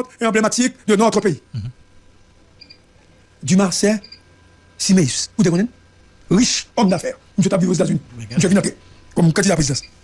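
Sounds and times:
man speaking: 0:00.0 - 0:01.8, 0:04.8 - 0:09.9
faint steady hum: 0:00.0 - 0:10.0.

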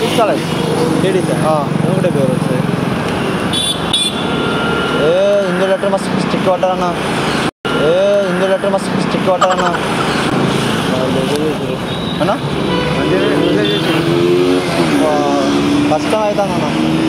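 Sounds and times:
street traffic: 0:00.0 - 0:17.0.

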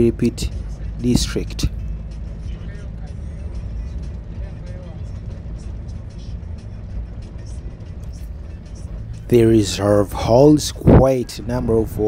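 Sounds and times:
faint music: 0:00.0 - 0:12.0
road noise: 0:00.0 - 0:12.0
vehicle engine rumble: 0:00.0 - 0:12.0.

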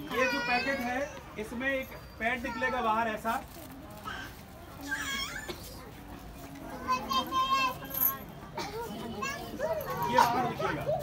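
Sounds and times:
murmur of lower voices: 0:00.0 - 0:11.0.

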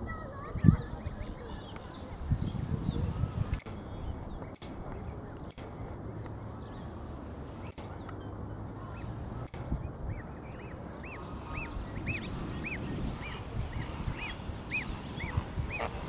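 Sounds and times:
goslings peeping: 0:08.8 - 0:16.0.

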